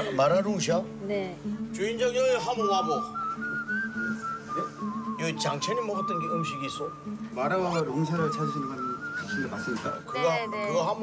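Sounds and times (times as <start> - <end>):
low musical accompaniment: 0.0 - 11.0
whistled tune: 2.6 - 11.0.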